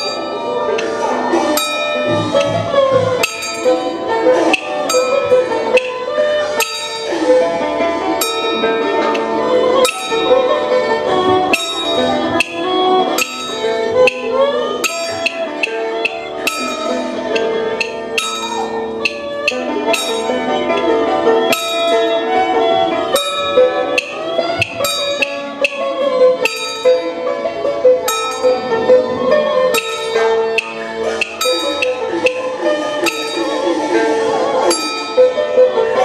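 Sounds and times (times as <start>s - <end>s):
metallic percussion strikes: 0.0s - 36.0s
sustained wavering melody: 0.0s - 36.0s.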